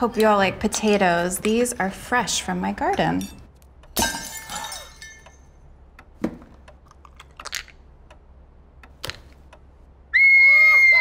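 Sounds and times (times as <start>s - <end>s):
loud high-pitched scream: 10.1s - 11.0s
voices crying out: 10.1s - 11.0s.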